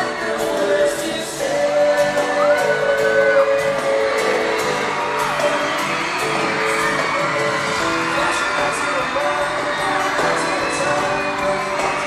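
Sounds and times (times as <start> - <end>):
loud live pop music: 0.0 - 12.0
person singing: 0.0 - 12.0
audience whooping and screaming: 2.2 - 12.0.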